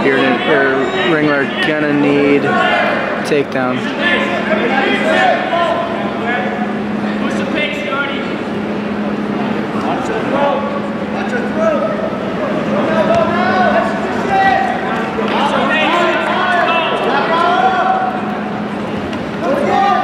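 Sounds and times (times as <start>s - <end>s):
crowd shouting: 0.0s - 8.0s, 11.5s - 20.0s
steady low hum: 0.0s - 20.0s.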